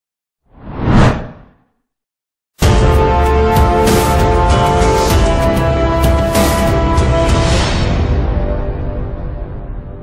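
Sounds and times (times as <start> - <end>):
whoosh sound effect: 0.5 - 1.6.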